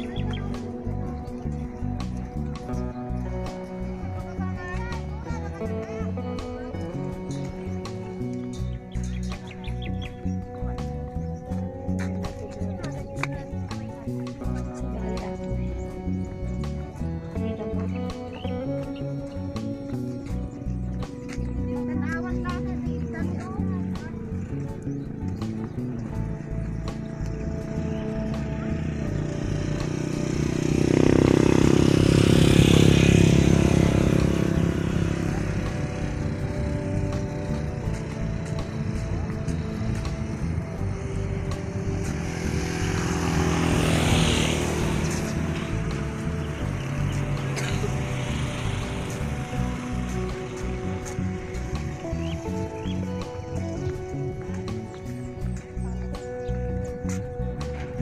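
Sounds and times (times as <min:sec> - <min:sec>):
background music: 0:00.0 - 0:58.0.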